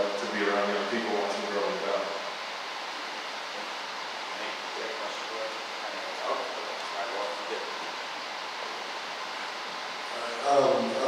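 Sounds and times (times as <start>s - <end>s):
man speaking over microphone: 0.0s - 2.2s, 4.7s - 7.9s, 10.1s - 11.0s
room noise hiss: 0.0s - 11.0s.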